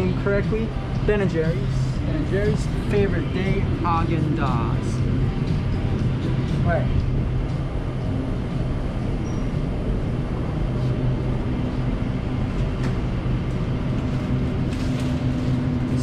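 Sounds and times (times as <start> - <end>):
refrigerated cases humming: 0.0 - 16.0
store ventilation: 0.0 - 16.0.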